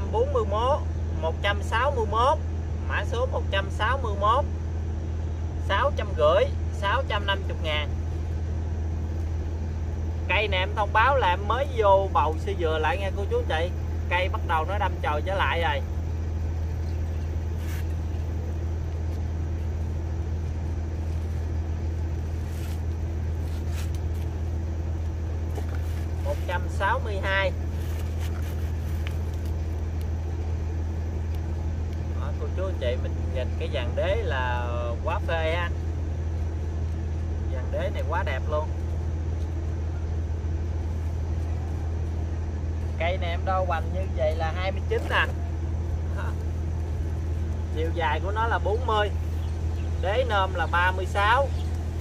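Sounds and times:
steady low rumble: 0.0s - 52.0s.

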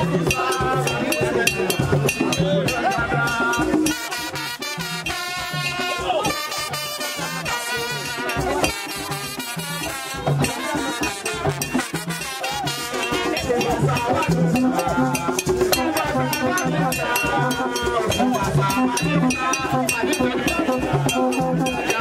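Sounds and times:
dense steady percussion: 0.0s - 22.0s
group singing: 0.0s - 22.0s.

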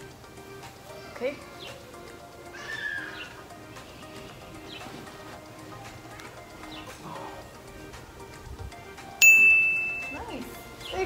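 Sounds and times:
background music: 0.0s - 11.0s
horse whinnying: 2.5s - 3.4s.

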